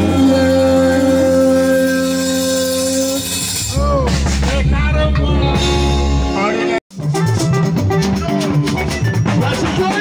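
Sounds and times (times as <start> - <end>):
band holding a long note: 0.0 - 6.8
sustained low bass: 0.0 - 10.0.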